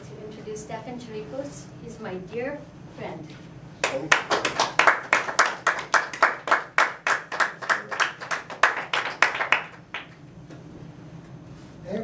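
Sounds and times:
audience clapping: 0:03.8 - 0:10.2.

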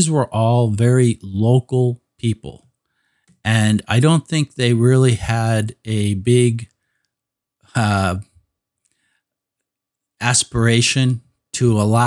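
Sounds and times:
man saying uh: 0:00.0 - 0:02.6, 0:03.5 - 0:06.6, 0:07.8 - 0:08.2, 0:10.2 - 0:12.0.

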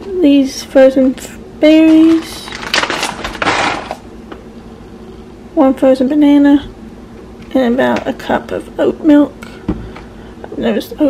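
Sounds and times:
frozen fruit clattering: 0:01.8 - 0:04.1
plastic bag rustling: 0:01.8 - 0:04.1.

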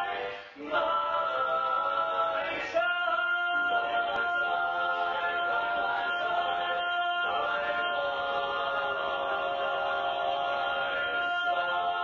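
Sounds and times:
men singing a cappella harmony: 0:00.0 - 0:12.0.

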